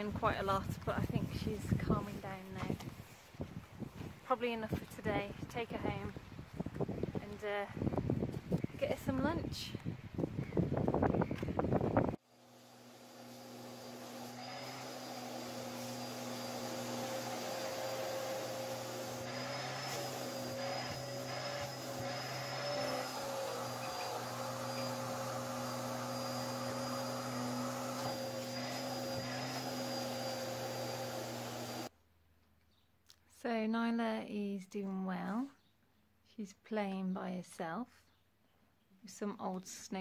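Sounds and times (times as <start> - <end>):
motor drone with high whine: 12.4 - 31.9.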